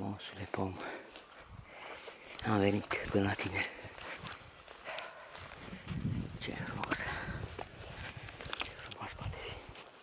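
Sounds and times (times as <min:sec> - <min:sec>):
footsteps through brush: 0:00.2 - 0:10.0.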